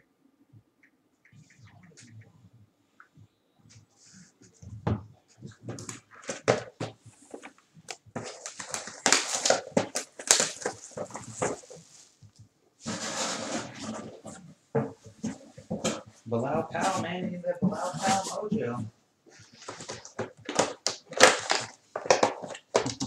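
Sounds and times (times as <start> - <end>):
cardboard shifting: 4.8 - 11.9
plastic shrink-wrap crinkling: 5.4 - 12.1, 19.5 - 23.0.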